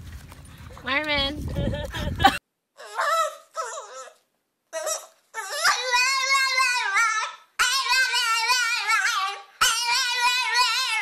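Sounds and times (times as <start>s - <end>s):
puppy howling: 2.8s - 4.2s, 4.8s - 11.0s.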